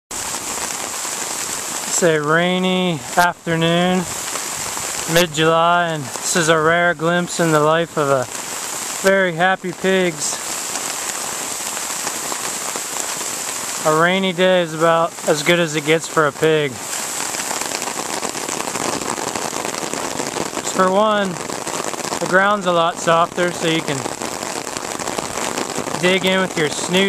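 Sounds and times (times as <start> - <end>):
steady rain falling: 0.1 - 27.0.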